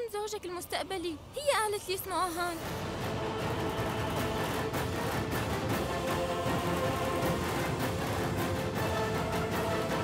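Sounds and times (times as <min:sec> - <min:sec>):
dramatic background score: 0:02.1 - 0:10.0.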